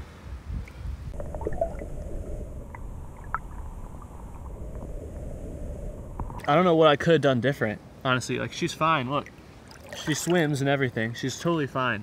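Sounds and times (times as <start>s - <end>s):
faint underwater clicks: 0.6s - 6.6s.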